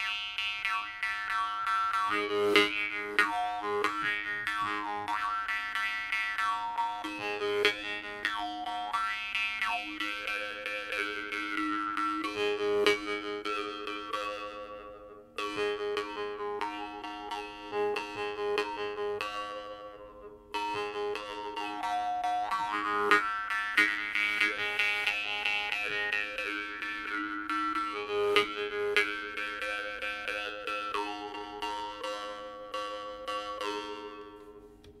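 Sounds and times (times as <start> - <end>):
jaw harp playing: 0.0 - 34.8.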